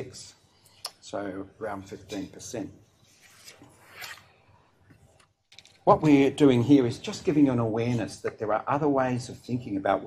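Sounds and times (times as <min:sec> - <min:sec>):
man speaking: 0:00.0 - 0:02.8, 0:05.8 - 0:10.0.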